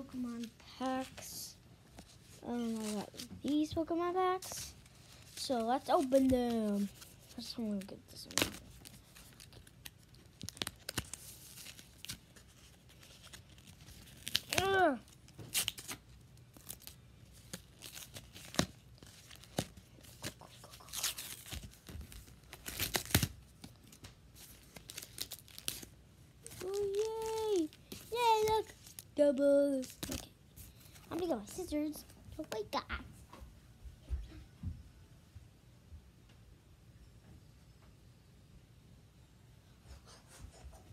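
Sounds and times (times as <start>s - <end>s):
child's voice: 0.0s - 1.6s, 2.4s - 4.8s, 5.4s - 8.6s, 14.5s - 15.1s, 26.4s - 30.4s, 31.1s - 33.1s
plastic packaging crinkling and tearing: 2.4s - 31.8s.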